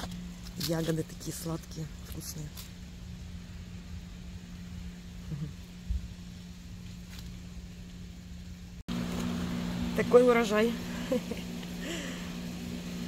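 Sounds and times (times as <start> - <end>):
low mechanical hum: 0.0 - 13.0.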